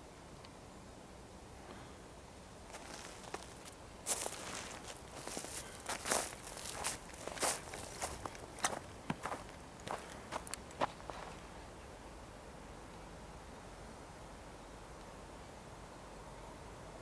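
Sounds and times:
footsteps on snow: 2.7s - 11.4s.

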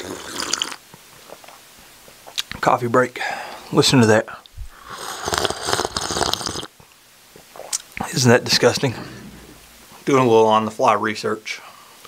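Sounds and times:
man slurping coffee: 0.0s - 1.5s, 4.8s - 6.8s.

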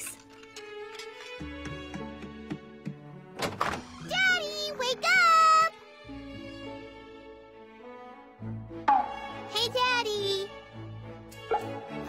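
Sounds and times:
soft background music: 0.0s - 12.0s
girl calling out: 4.1s - 5.7s.

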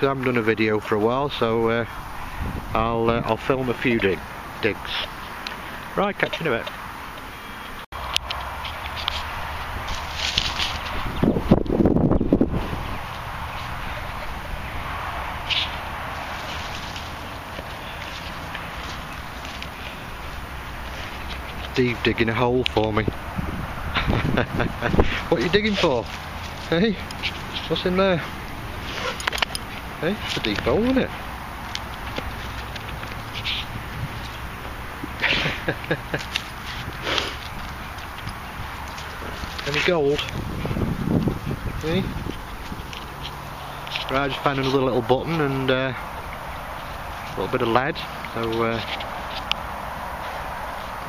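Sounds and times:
wind buffeting microphone: 1.2s - 6.2s, 8.0s - 51.0s
dog sniffing and snuffling: 25.0s - 31.3s, 31.9s - 34.4s, 36.3s - 40.8s.

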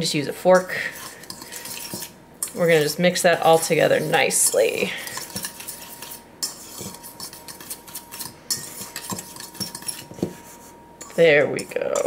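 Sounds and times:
whisk swishing in dry mix: 0.6s - 11.9s
whisk clinking on metal bowl: 0.6s - 12.0s.

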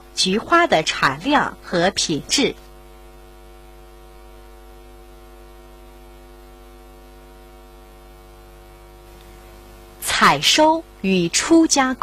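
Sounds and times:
buzzy electrical hum: 0.0s - 12.0s.

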